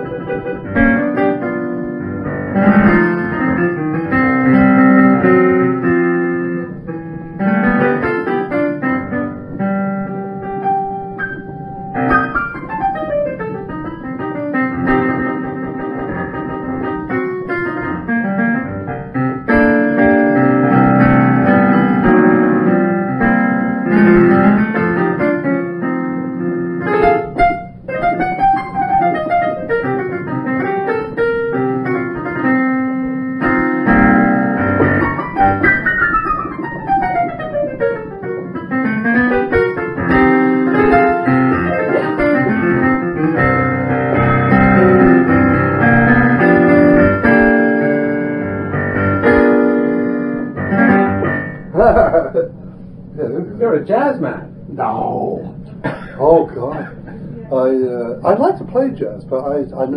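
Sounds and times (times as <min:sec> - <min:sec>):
boogie-woogie piano: 0:00.0 - 0:59.9.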